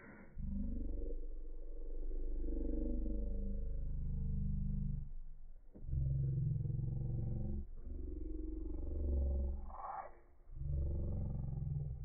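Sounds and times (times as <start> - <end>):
deep low growling drone: 0.0 - 12.0.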